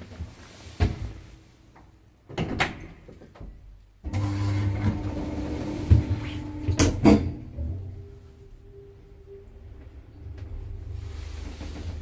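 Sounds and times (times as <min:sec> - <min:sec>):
lift motor hum: 0:04.1 - 0:12.0.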